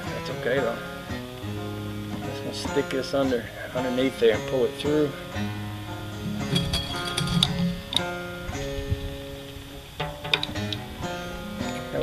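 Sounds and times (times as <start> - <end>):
banjo strings twanging: 2.1 - 9.3, 9.9 - 12.0.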